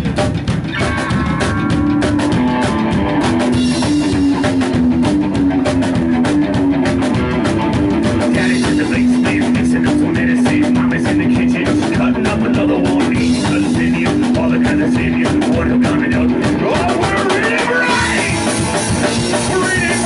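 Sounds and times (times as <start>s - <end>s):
drum kit beat: 0.0s - 20.0s
electric guitar riff: 0.0s - 20.0s
double bass: 1.0s - 20.0s.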